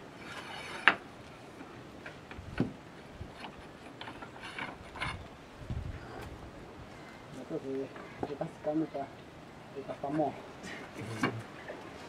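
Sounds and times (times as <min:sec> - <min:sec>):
stone weights scraping clanks: 0:00.2 - 0:01.0, 0:03.3 - 0:05.3.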